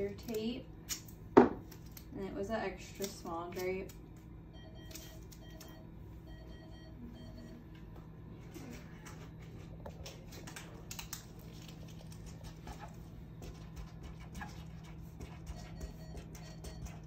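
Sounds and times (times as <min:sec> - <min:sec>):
paper crinkles and rustles: 0:09.9 - 0:13.0.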